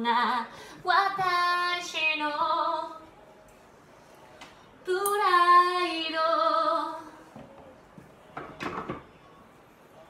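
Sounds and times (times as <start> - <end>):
woman singing unaccompanied: 0.0 - 3.1, 4.9 - 7.2.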